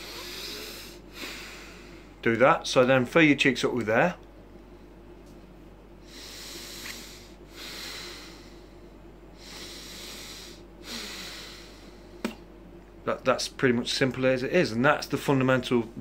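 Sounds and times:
breathing through the nose: 0:06.0 - 0:08.8, 0:09.4 - 0:12.2.

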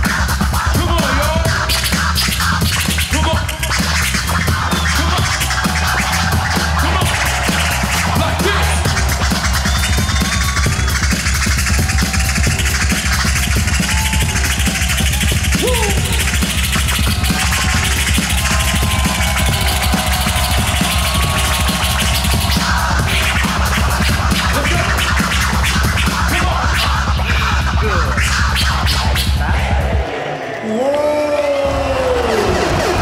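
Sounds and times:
turntable scratching: 0:00.0 - 0:30.6, 0:32.0 - 0:33.0
hip-hop beat with heavy bass: 0:00.0 - 0:33.0.

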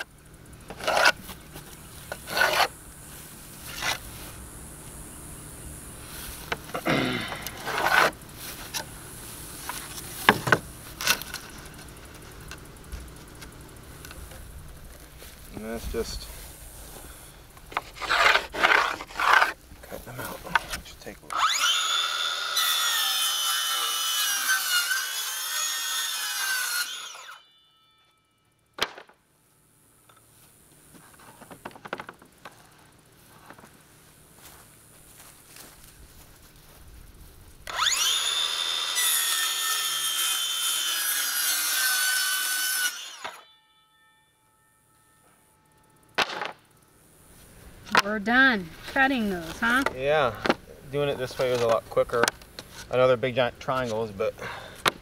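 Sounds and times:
circular saw cutting wood: 0:00.7 - 0:01.4, 0:02.0 - 0:02.8, 0:07.3 - 0:08.9, 0:17.8 - 0:19.6, 0:21.3 - 0:27.6, 0:37.7 - 0:43.8.

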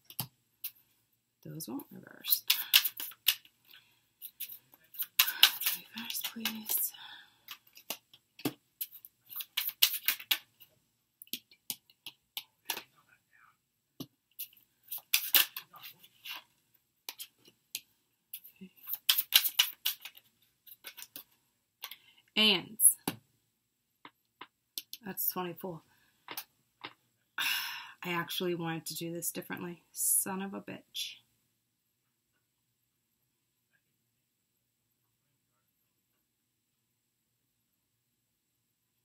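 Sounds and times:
cards snapping and sliding: 0:02.4 - 0:03.5, 0:04.2 - 0:06.8, 0:07.5 - 0:10.5, 0:14.4 - 0:16.4, 0:18.8 - 0:21.3.

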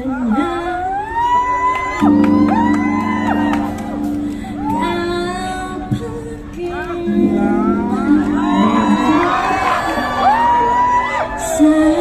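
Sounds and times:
crowd cheering: 0:00.9 - 0:06.0, 0:06.8 - 0:12.0
crowd singing along: 0:05.8 - 0:10.4.

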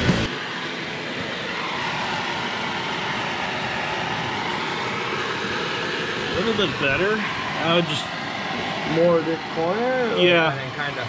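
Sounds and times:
rock music: 0:00.0 - 0:00.3.

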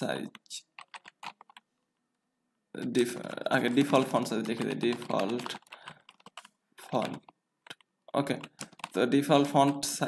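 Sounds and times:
typing on computer keyboard: 0:00.3 - 0:01.7, 0:03.2 - 0:10.0.

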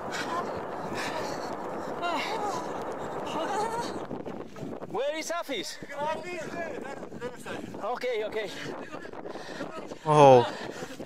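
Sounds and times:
steady rushing noise: 0:00.0 - 0:11.0.

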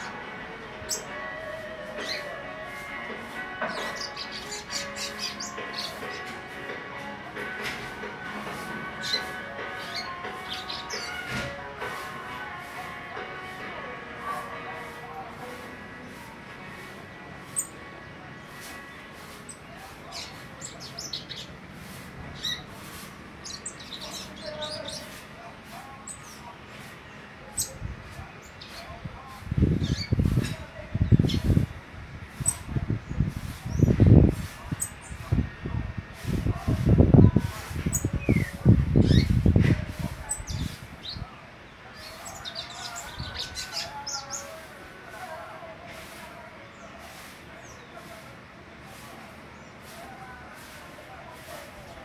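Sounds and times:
faint voices: 0:00.0 - 0:52.0
songbird chirping: 0:00.0 - 0:52.0.

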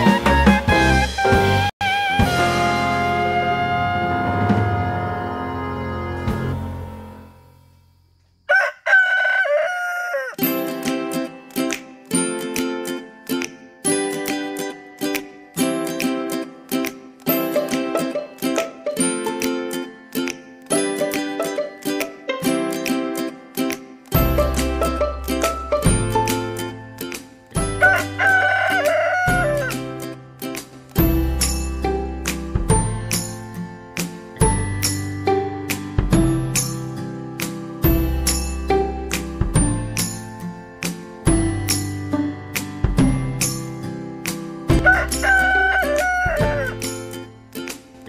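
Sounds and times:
background music: 0:00.0 - 0:07.8, 0:10.4 - 0:48.0
rooster crowing: 0:08.5 - 0:10.4, 0:27.8 - 0:29.8, 0:44.8 - 0:46.9.

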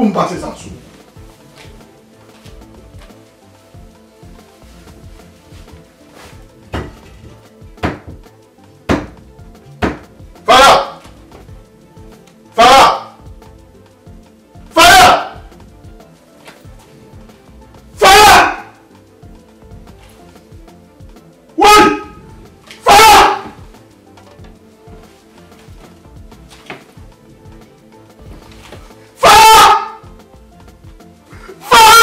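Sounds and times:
quiet background music: 0:00.0 - 0:32.0
man wailing cry: 0:12.6 - 0:13.2, 0:14.8 - 0:15.4, 0:18.0 - 0:18.8, 0:21.6 - 0:22.2, 0:22.8 - 0:23.6, 0:29.2 - 0:30.0, 0:31.4 - 0:32.0
man wailing cries: 0:22.8 - 0:23.6, 0:29.2 - 0:30.0, 0:31.4 - 0:32.0.

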